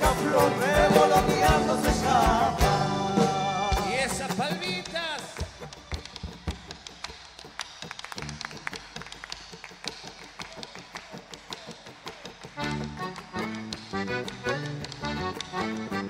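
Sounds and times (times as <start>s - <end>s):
live folk band playing: 0.0s - 16.0s
hand claps: 4.2s - 16.0s.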